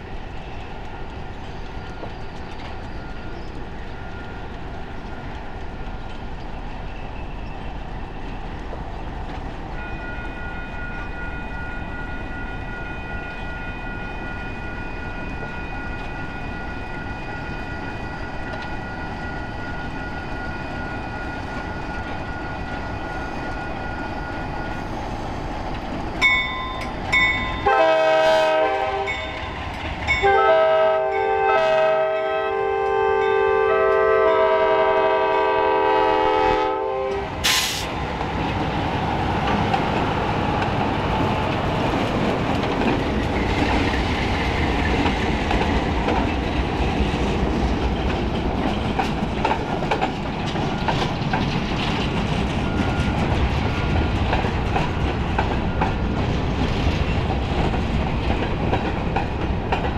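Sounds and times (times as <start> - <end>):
train wheels rolling: 0.0 - 31.1, 34.6 - 59.9
locomotive air horn: 27.6 - 29.4, 30.2 - 37.8.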